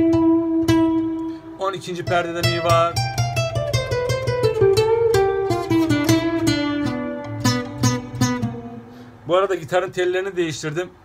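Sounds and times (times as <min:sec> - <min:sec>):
classical guitar fingerstyle: 0:00.0 - 0:09.8.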